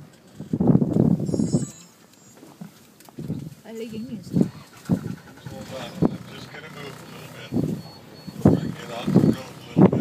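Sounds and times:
people talking in low bursts: 0:03.6 - 0:10.0.

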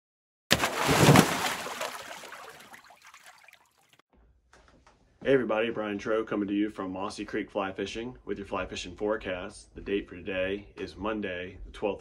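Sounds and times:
water splashing and trickling: 0:00.5 - 0:04.0.

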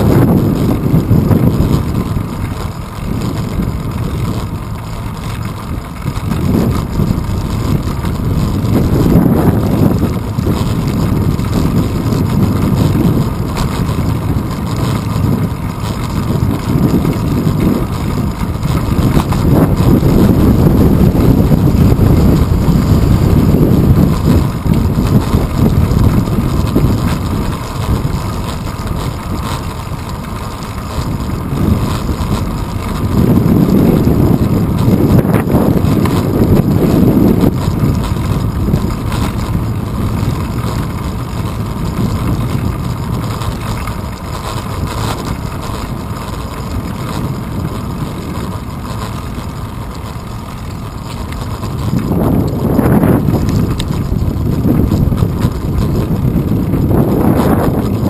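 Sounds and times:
bicycle road noise: 0:00.0 - 0:58.0
wind buffeting microphone: 0:00.0 - 0:58.0.

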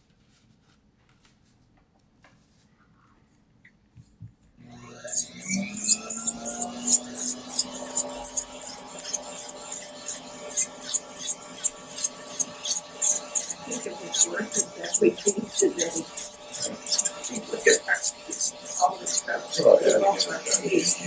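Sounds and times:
rotary handpiece whine: 0:04.7 - 0:21.0
sanding disc rasping on skin: 0:05.0 - 0:21.0.

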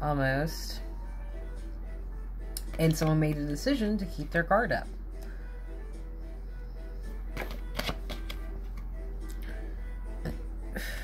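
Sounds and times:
soft background music: 0:00.0 - 0:11.0
cards clicking and snapping: 0:07.4 - 0:08.4.

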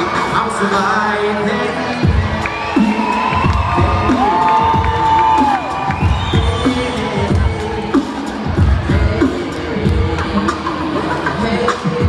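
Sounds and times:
crowd cheering: 0:00.0 - 0:11.8
beatboxing: 0:00.1 - 0:12.0.

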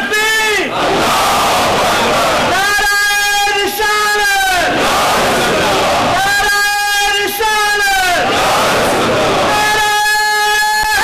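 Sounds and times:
long shouted call: 0:00.2 - 0:11.0
crowd of men chanting: 0:00.6 - 0:10.0.

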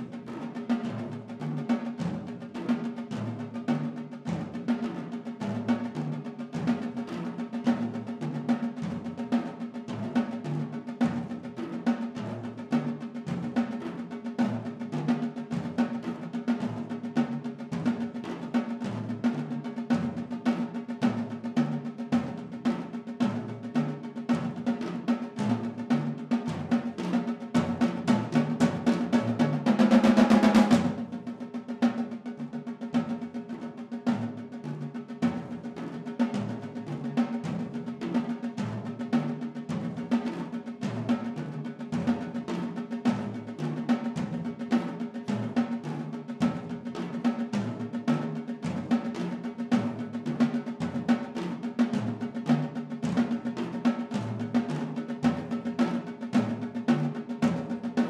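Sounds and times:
loud drum roll: 0:00.0 - 0:58.0
sticks on tuned tom-toms: 0:00.0 - 0:58.0.

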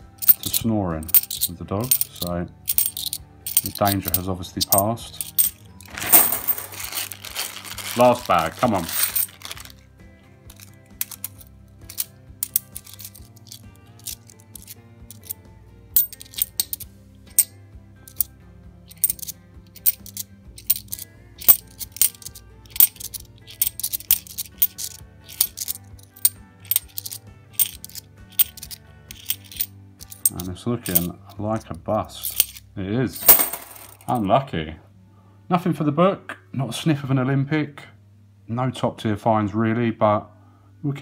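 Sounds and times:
coins clicking together: 0:00.0 - 0:09.8, 0:10.5 - 0:15.4, 0:16.0 - 0:17.5, 0:18.1 - 0:18.3, 0:18.9 - 0:31.1, 0:32.2 - 0:34.1
quiet background music: 0:00.0 - 0:41.0.

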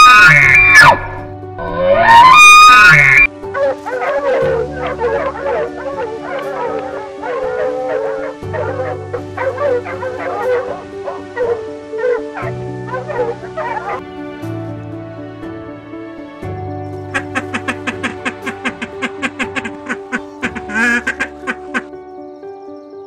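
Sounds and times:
foxes yapping: 0:00.0 - 0:14.0, 0:17.2 - 0:21.9
background music: 0:00.0 - 0:23.0.

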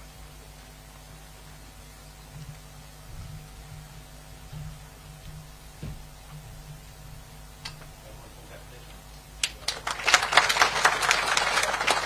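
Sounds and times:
audience applauding: 0:09.4 - 0:12.0.

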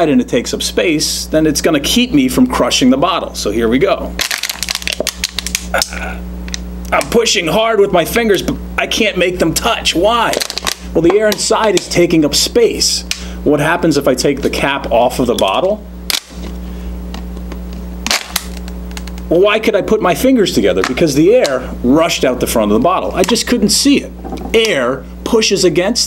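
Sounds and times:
steady low hum: 0:00.0 - 0:26.0
plastic bottle crackling: 0:04.2 - 0:05.7, 0:10.2 - 0:12.0, 0:18.0 - 0:19.3.

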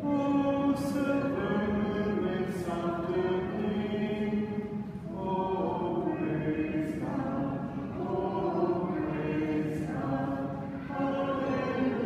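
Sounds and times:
congregation singing a hymn: 0:00.0 - 0:12.0.

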